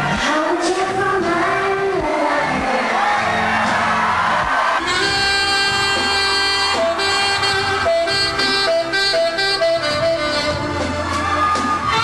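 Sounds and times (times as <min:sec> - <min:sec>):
crowd noise: 0:00.0 - 0:12.0
live band playing: 0:00.0 - 0:12.0.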